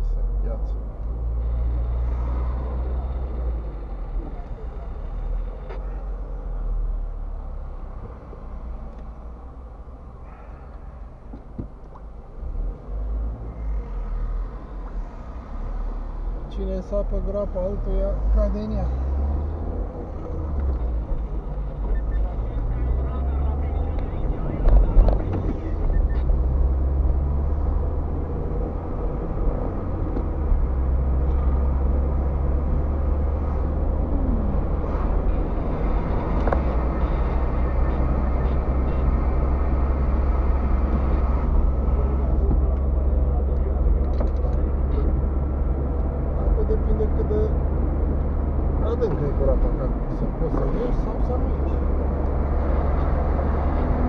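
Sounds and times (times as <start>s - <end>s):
car engine and tyres rumbling: 0.0s - 54.0s.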